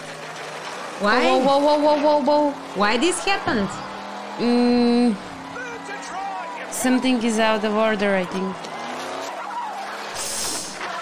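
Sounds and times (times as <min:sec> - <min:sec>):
racing car engines: 0:00.0 - 0:11.0
tyres skidding: 0:00.0 - 0:11.0.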